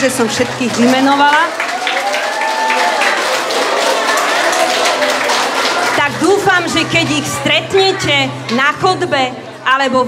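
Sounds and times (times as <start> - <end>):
audience applauding: 0.1 - 6.7.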